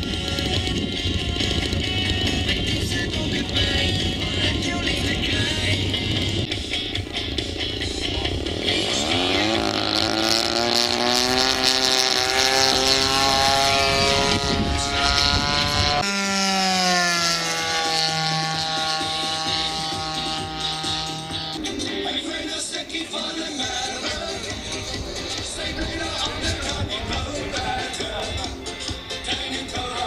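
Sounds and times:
model airplane engine throttling up: 0.0s - 30.0s.

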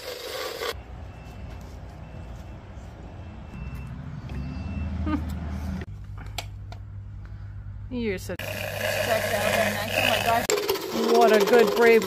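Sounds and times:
motorized dental float humming: 8.4s - 11.8s.

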